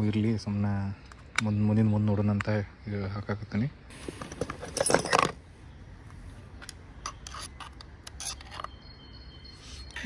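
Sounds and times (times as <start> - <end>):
hex key scraping and clicking on metal: 7.0 - 8.8.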